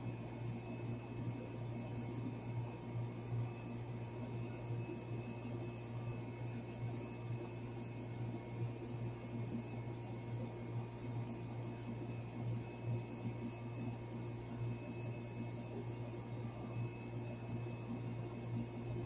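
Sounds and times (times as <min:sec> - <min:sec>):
air conditioner hum: 0:00.0 - 0:19.0.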